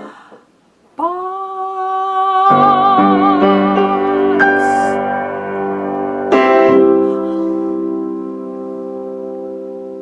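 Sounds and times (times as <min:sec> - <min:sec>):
piano and voice: 0:01.0 - 0:10.0.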